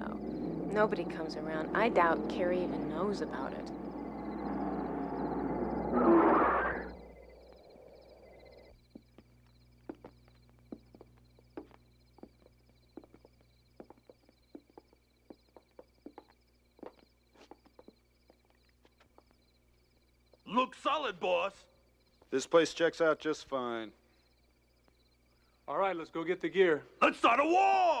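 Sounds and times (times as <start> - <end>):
car engine surging: 0.0 - 8.6
crickets chirping: 0.0 - 28.0
footsteps: 8.7 - 19.5.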